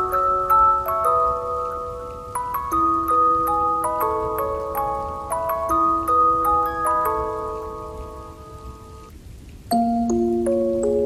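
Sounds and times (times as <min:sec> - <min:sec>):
music box notes: 0:00.0 - 0:09.1, 0:09.7 - 0:11.0
rain: 0:00.0 - 0:11.0.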